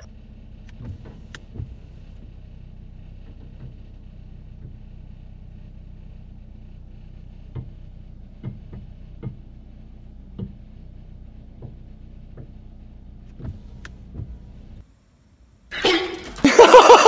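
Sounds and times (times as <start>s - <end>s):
car engine idling: 0.0s - 14.9s.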